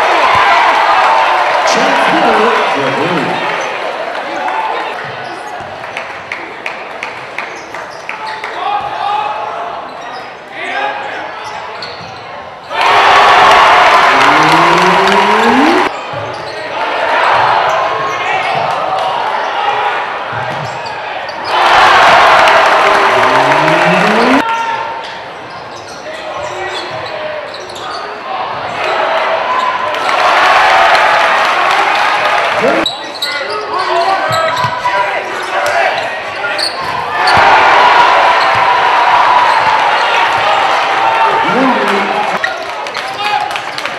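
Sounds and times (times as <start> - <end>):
crowd cheering and yelling: 0.0 - 5.0, 12.7 - 15.9, 21.4 - 24.5, 37.1 - 43.6
crowd hubbub: 1.6 - 3.8, 13.9 - 15.9, 22.3 - 24.4, 32.5 - 32.9, 41.2 - 42.4.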